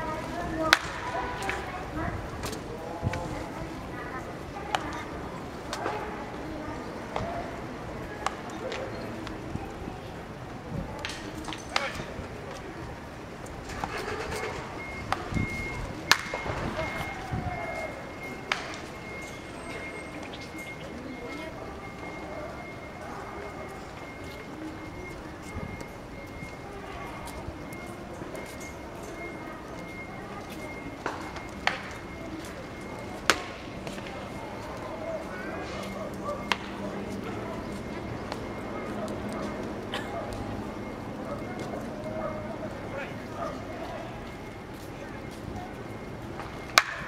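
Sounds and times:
ballpark ambience: 0:00.0 - 0:47.0
thin steady high tone: 0:14.6 - 0:47.0
wooden bat hitting balls: 0:16.1 - 0:16.5, 0:46.7 - 0:47.0.

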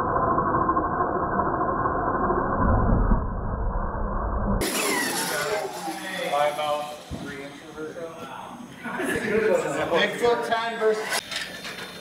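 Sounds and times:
people talking: 0:04.6 - 0:11.2.

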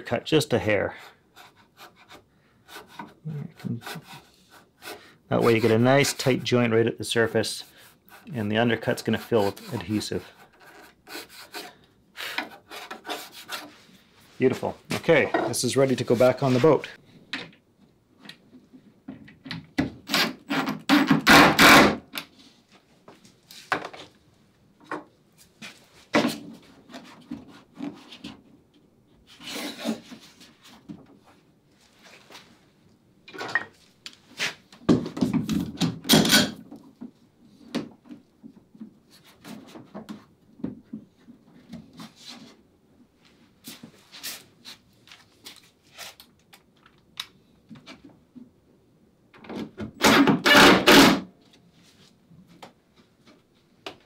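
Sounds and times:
wood rubbing on wood: 0:01.3 - 0:06.8, 0:07.4 - 0:15.1
wooden knocks and thunks: 0:34.8 - 0:37.2.

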